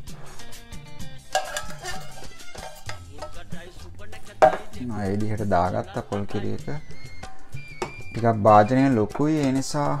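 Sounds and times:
background music: 0:00.0 - 0:10.0
metal can set on countertop: 0:01.3 - 0:03.3, 0:04.4 - 0:04.8.

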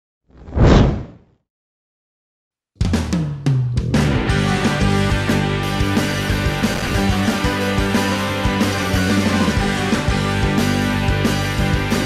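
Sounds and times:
whoosh with deep rumble: 0:00.4 - 0:01.2.

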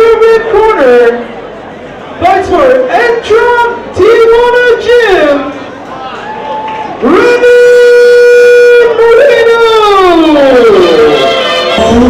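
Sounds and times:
ring announcer calling over pa: 0:00.0 - 0:01.4, 0:02.2 - 0:12.0.

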